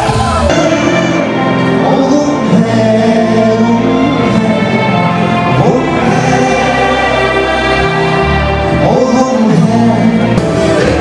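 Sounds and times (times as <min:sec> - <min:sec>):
man singing into microphone: 0:00.0 - 0:07.9, 0:08.6 - 0:11.0
crowd singing along: 0:00.0 - 0:11.0
live band playing: 0:00.0 - 0:11.0.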